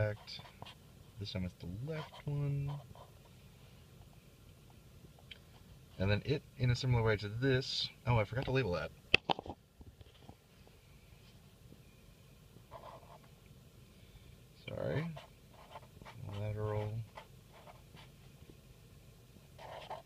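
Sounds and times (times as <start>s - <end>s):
marker writing on paper: 0.0s - 0.8s, 12.7s - 13.2s, 15.1s - 18.1s, 19.6s - 20.0s
low hummed voice: 1.2s - 3.0s.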